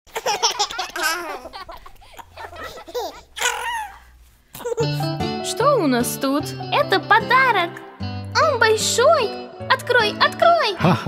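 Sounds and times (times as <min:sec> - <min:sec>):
young children giggling: 0:00.1 - 0:05.0
music: 0:04.8 - 0:11.0.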